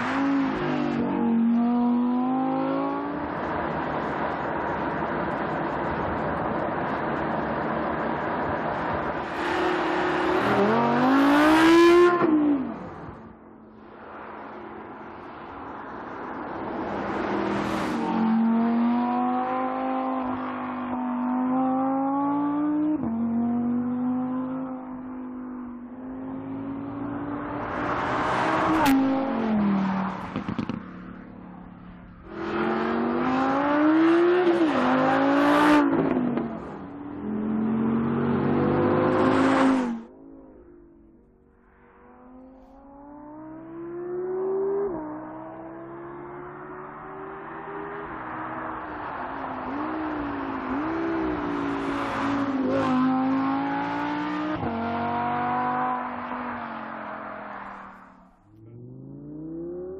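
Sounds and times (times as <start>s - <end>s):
car passing by: 14.0s - 22.7s, 41.6s - 59.9s
sports car engine accelerating: 32.2s - 41.4s, 42.1s - 56.1s, 58.4s - 59.9s.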